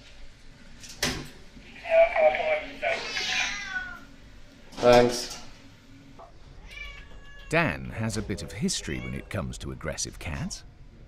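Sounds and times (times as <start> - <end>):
cat yowling: 2.8 - 4.1.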